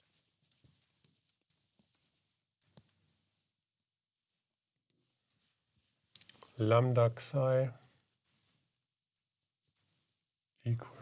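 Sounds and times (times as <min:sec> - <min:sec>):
marker squeaking on glass: 0:00.0 - 0:00.9, 0:01.9 - 0:03.0, 0:08.2 - 0:08.4.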